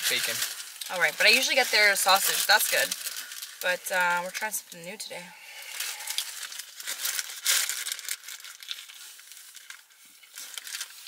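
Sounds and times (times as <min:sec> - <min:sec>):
paper bag crinkling: 0:00.0 - 0:11.0.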